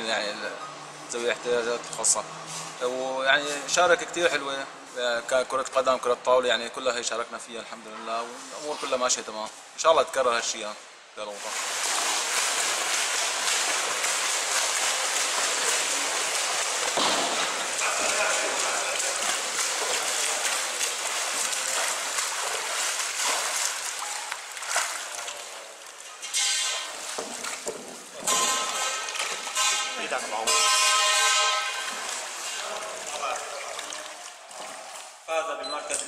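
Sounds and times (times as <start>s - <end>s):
swimmers splashing water: 11.4s - 36.0s
people clapping: 11.8s - 25.4s
horn blast: 28.3s - 32.1s.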